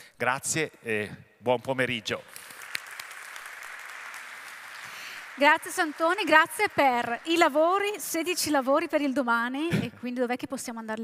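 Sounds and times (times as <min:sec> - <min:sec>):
audience applauding: 0:02.1 - 0:08.5.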